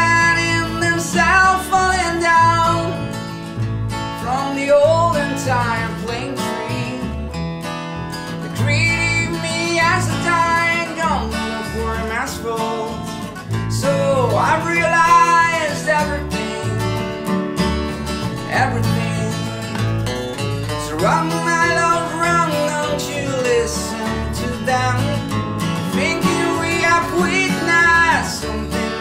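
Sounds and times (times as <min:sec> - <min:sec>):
person singing: 0:00.0 - 0:03.1, 0:04.2 - 0:07.2, 0:08.5 - 0:17.2, 0:18.3 - 0:19.8, 0:20.8 - 0:29.0
acoustic guitar: 0:00.0 - 0:29.0
plucked double bass: 0:00.0 - 0:29.0.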